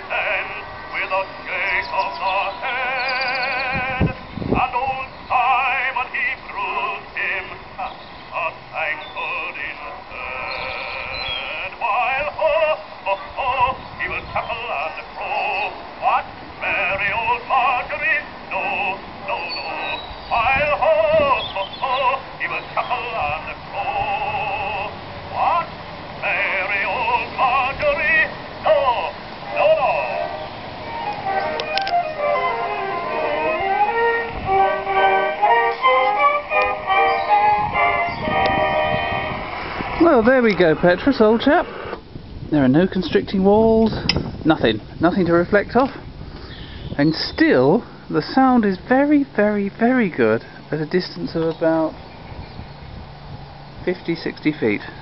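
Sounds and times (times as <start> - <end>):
phonograph record of man singing: 0.0 - 42.0.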